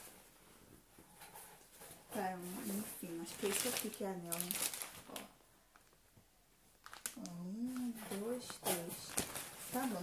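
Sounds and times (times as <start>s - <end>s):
plastic packaging crackling: 2.1s - 6.1s, 6.7s - 10.0s.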